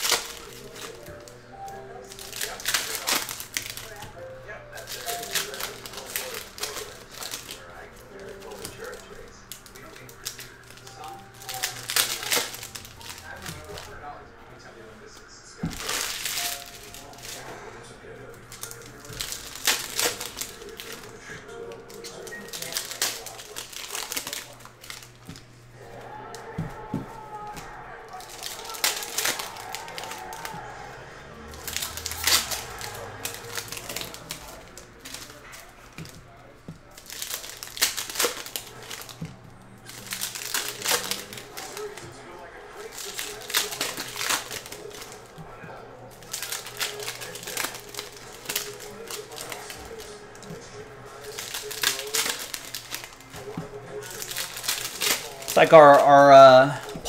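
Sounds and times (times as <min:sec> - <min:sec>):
cards being handled: 0:00.0 - 0:57.0
foil wrappers crinkling and tearing: 0:00.0 - 0:57.0.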